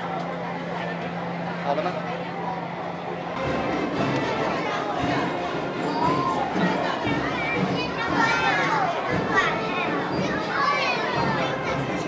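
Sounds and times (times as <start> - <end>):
children chattering and calling out: 0.0 - 12.0.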